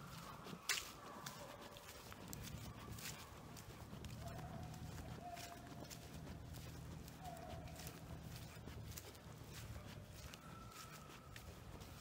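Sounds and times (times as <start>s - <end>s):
footsteps in dry leaves: 0.0s - 12.0s.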